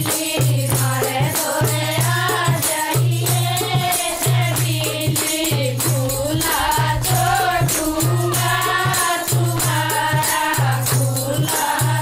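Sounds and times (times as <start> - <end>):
women's chorus singing: 0.0 - 12.0
low steady drone note: 5.8 - 9.7.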